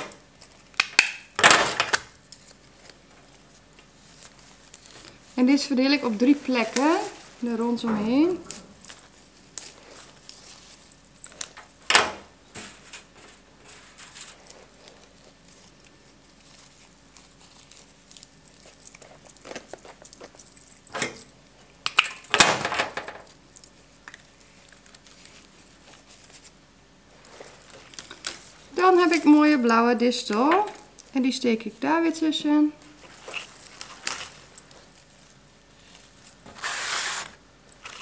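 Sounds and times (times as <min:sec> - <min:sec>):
flower stems rustling: 0:02.2 - 0:11.6, 0:12.7 - 0:20.6, 0:23.7 - 0:38.0
dry rustle of flower stems: 0:02.5 - 0:10.9.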